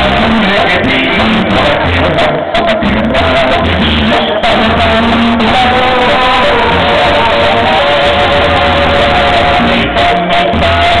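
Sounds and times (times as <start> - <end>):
live brass band music: 0.0 - 11.0.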